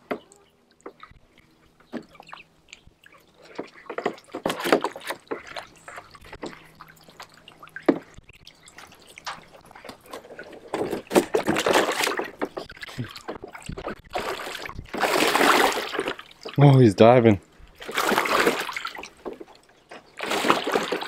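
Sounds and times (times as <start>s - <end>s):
ducks splashing water: 0.0s - 21.0s.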